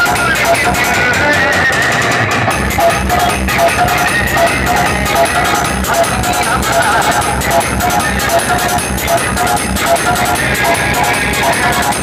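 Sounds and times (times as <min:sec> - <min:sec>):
loud dance music with heavy bass: 0:00.0 - 0:12.0.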